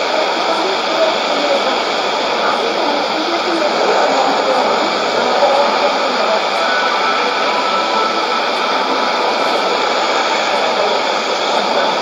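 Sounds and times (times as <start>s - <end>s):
shortwave radio static and hiss: 0.0s - 12.0s.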